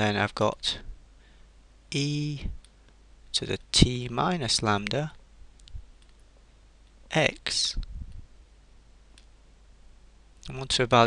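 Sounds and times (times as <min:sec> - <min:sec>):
low hiss: 0:00.0 - 0:11.0.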